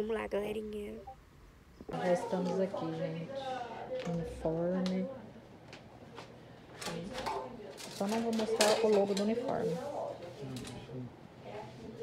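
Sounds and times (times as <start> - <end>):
voices talking in background: 1.8 - 12.0.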